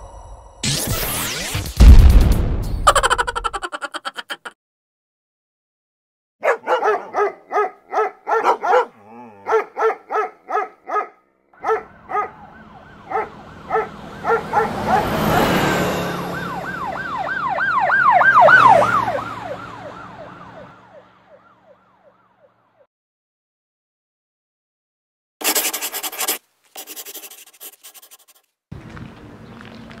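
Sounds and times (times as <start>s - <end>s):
dog barking rapidly: 6.4s - 12.4s, 13.1s - 15.2s
car passing: 11.6s - 22.2s
police siren yelp: 11.6s - 22.8s.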